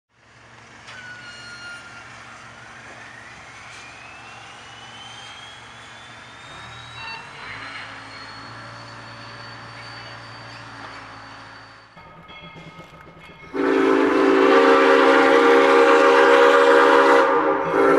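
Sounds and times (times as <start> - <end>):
high whine rising in pitch: 2.1 - 10.6.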